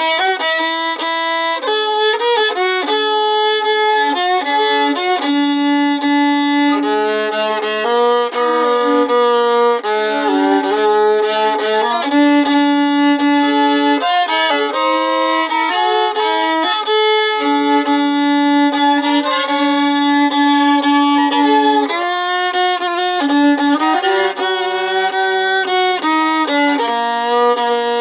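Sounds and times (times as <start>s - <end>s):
solo fiddle melody: 0.0s - 28.0s.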